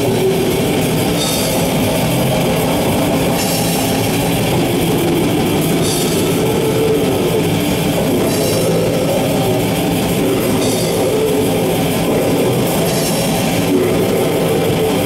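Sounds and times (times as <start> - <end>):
cymbal crash: 0.0 - 15.0
heavy metal band playing live: 0.0 - 15.0.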